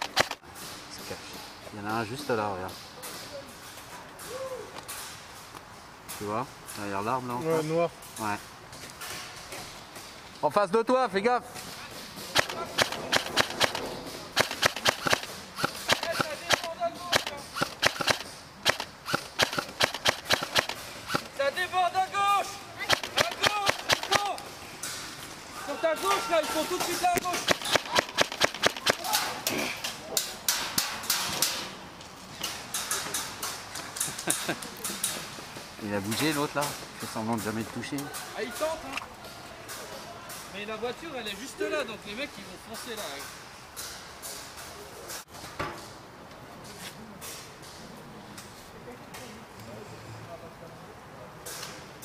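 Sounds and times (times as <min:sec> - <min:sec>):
airsoft guns firing: 0:00.0 - 0:00.4, 0:12.2 - 0:21.4, 0:22.8 - 0:24.6, 0:26.8 - 0:29.4
voices calling: 0:00.0 - 0:43.6.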